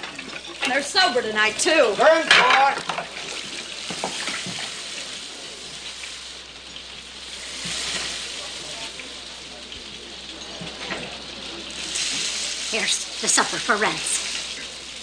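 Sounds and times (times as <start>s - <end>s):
food sizzling in a pan: 0.0s - 15.0s.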